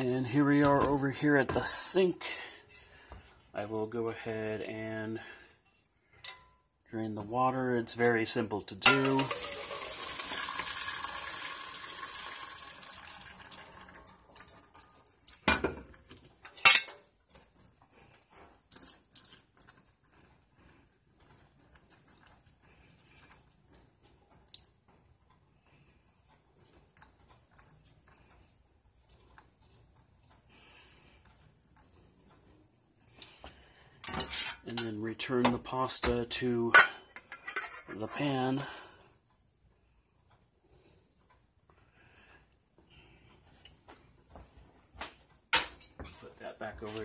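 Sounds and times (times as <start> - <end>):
metal cookware clanking: 6.2 - 6.6, 8.8 - 9.9, 15.4 - 17.1, 34.0 - 38.3
water pouring through metal strainer: 8.9 - 15.4
water dripping: 9.0 - 16.5.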